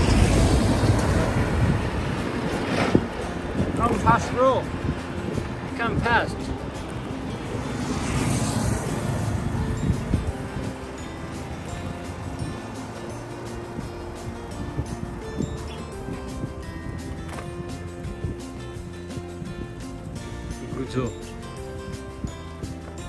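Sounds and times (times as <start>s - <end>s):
loud rushing swell: 0.0s - 17.1s
background music held tones: 0.0s - 23.0s.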